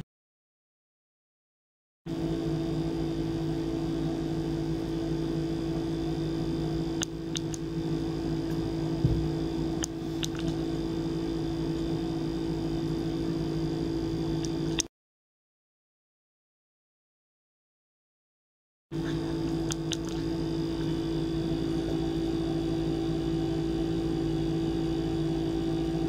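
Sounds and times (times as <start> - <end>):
ultrasonic cleaner buzzing hum: 2.1 - 14.9, 19.0 - 26.0.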